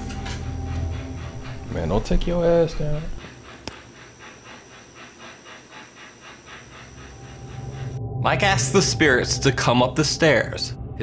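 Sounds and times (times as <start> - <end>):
dog panting: 0.4 - 8.0.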